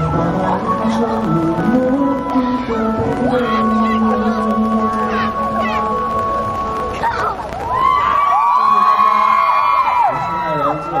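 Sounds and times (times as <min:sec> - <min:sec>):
crowd of fans cheering: 0:07.6 - 0:11.0.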